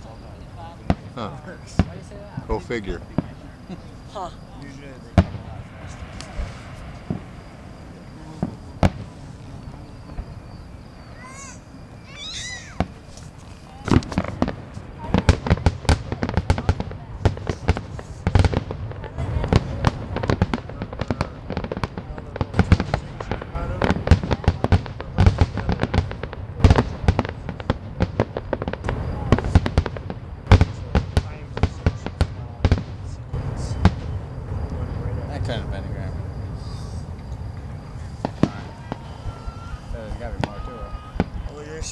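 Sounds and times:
fireworks bursting: 0.0 - 41.9
rapid barrage of fireworks bangs: 0.0 - 41.9.

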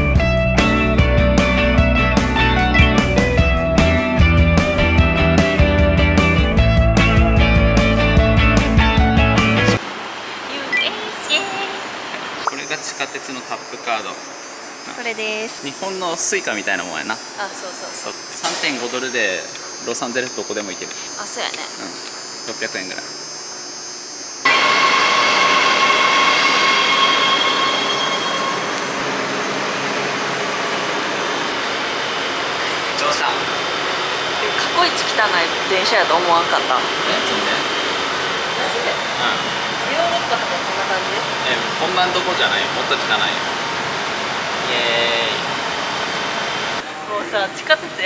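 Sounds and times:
high-pitched whining tones: 10.5 - 47.0
subway train rail noise: 24.4 - 48.0.

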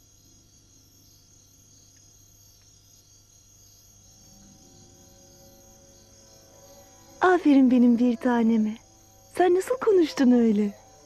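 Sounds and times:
faint high-pitched tones: 4.0 - 11.0.

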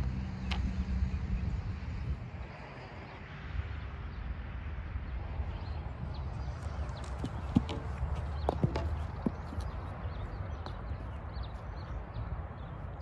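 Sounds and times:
knocks and clicks on tee: 7.0 - 9.8
footsteps: 7.0 - 9.9.

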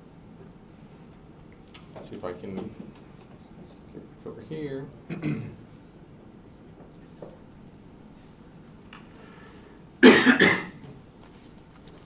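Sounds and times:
person coughing: 5.1 - 5.6, 10.0 - 10.8.

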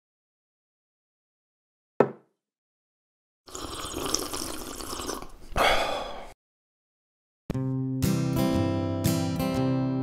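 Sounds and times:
liquid splashing and pouring: 3.5 - 5.4.

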